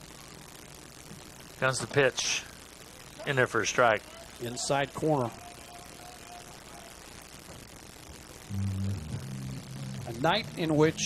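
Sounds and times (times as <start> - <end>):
faint background hiss: 0.0 - 11.0
music with low held notes: 8.5 - 11.0.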